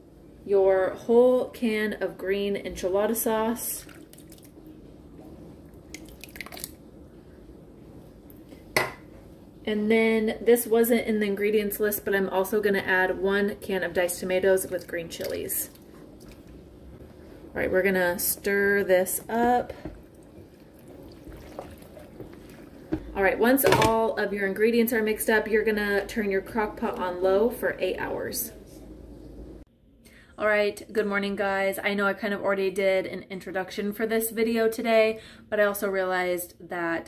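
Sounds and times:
wet stirring in a pot: 0:03.7 - 0:06.8, 0:12.5 - 0:23.6.

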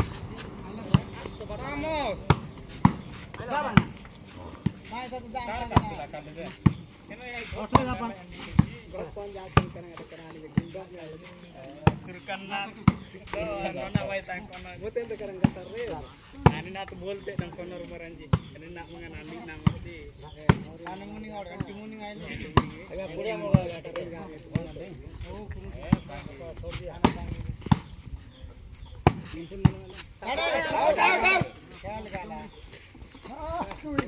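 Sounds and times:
people talking and calling out: 0:00.0 - 0:34.0
loud shout: 0:30.2 - 0:31.6.

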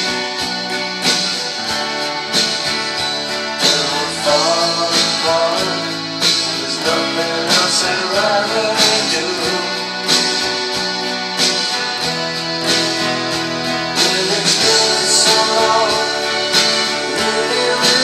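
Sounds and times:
acoustic guitar strummed: 0:00.0 - 0:18.0.

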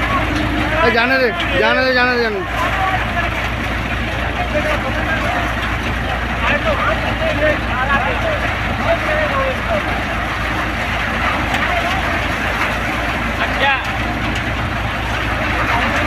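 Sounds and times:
thresher running with low drone: 0:00.0 - 0:16.0.

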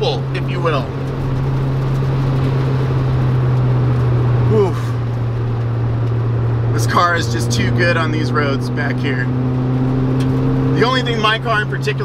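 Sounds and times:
car engine droning: 0:00.0 - 0:12.0
road and wind noise: 0:00.0 - 0:12.0.

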